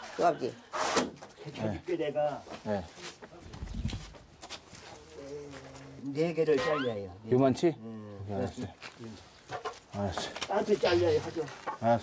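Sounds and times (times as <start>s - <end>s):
tools and boards clacking: 9.5s - 9.8s, 11.5s - 12.0s.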